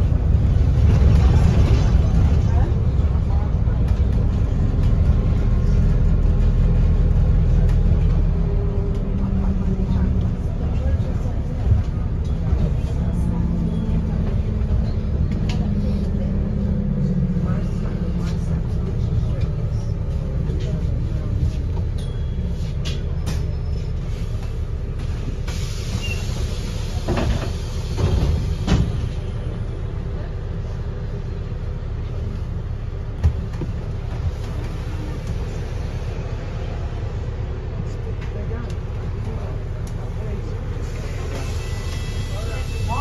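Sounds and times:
bus interior drone: 0.0s - 43.0s.

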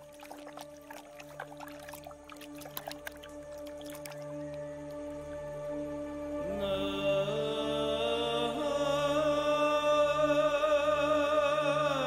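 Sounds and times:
low sustained drone: 0.0s - 12.0s
wavering wordless melody: 0.0s - 12.0s.

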